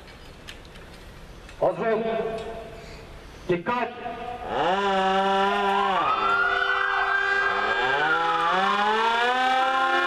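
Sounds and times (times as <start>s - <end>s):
outdoor hush: 0.0s - 5.2s.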